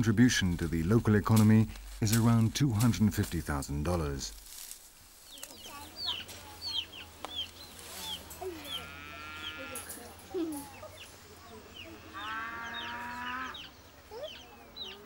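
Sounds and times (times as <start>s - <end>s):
chickens chirping: 5.2s - 15.0s
chickens clucking: 5.3s - 15.0s
drawn-out chicken calls: 5.4s - 10.1s, 10.7s - 15.0s.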